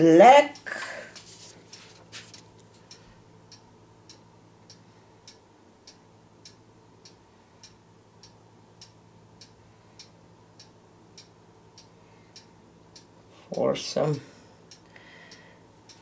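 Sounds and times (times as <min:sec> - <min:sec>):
faint steady ticking: 0:00.0 - 0:16.0
low steady hum: 0:00.0 - 0:16.0.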